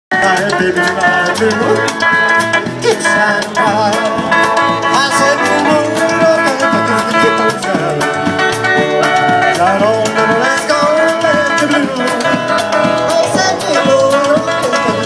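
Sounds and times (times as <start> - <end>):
live band playing: 0.1 - 15.0
steady drum beat: 0.1 - 15.0
wavering melody line: 1.7 - 15.0.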